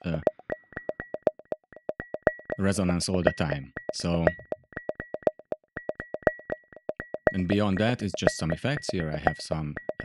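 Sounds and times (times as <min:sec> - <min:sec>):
synth pings: 0:00.0 - 0:10.0.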